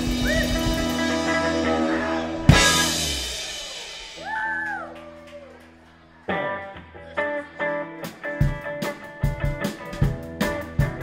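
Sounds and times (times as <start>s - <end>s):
electric guitar and keyboard chord: 0.0s - 3.5s
drum kit strikes: 0.0s - 4.2s
rock band final chord: 0.0s - 4.2s.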